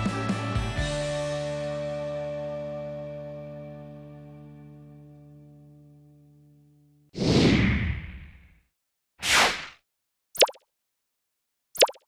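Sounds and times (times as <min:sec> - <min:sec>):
sharp falling swishes: 0:09.2 - 0:09.8.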